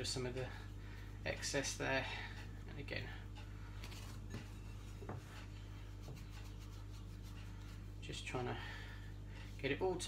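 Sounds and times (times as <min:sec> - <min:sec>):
steady low hum: 0:00.0 - 0:10.0
hands rubbing dough: 0:03.8 - 0:08.8.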